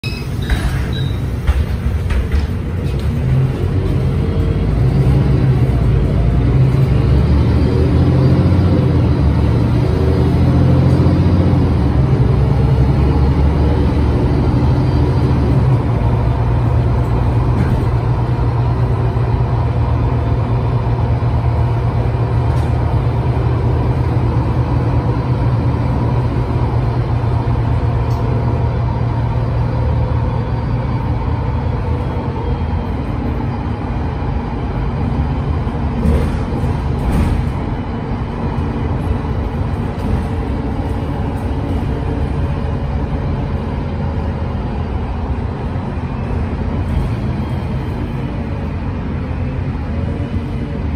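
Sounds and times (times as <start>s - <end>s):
bus engine drone from inside: 0.0s - 50.9s.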